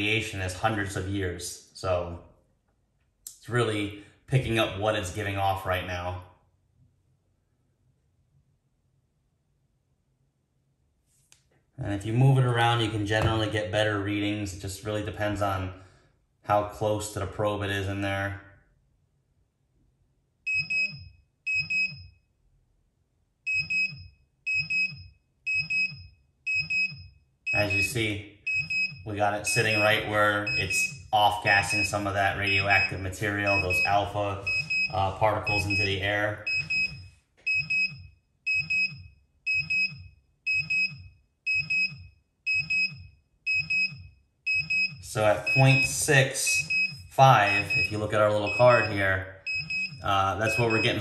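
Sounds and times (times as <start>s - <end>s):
radiation monitor alarm double beeps: 20.5s - 22.2s, 23.5s - 51.0s.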